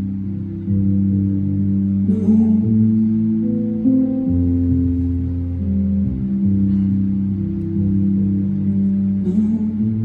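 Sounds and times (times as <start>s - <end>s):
live instrumental music with low chords: 0.0s - 10.0s.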